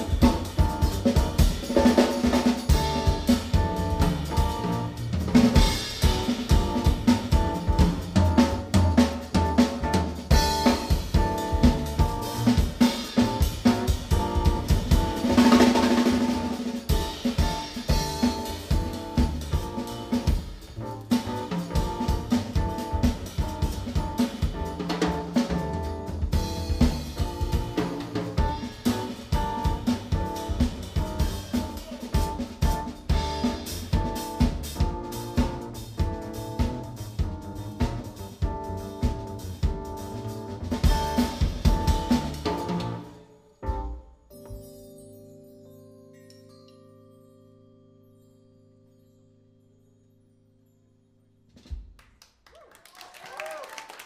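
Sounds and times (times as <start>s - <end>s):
drum kit playing busily: 0.0s - 44.7s
jazz piano trio playing: 0.0s - 49.0s.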